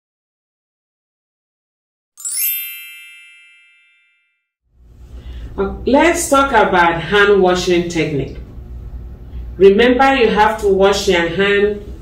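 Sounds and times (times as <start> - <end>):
bright chime ding: 2.2 - 4.4.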